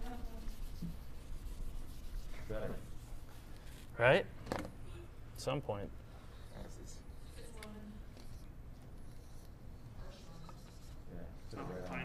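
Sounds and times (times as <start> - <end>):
marker rubbing on whiteboard: 0.0 - 3.9, 6.3 - 12.0.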